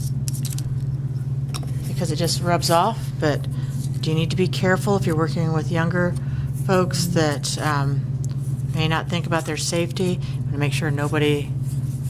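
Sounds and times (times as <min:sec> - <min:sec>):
paper scratching: 0:00.0 - 0:00.7, 0:10.8 - 0:12.0
low electrical hum: 0:00.0 - 0:12.0.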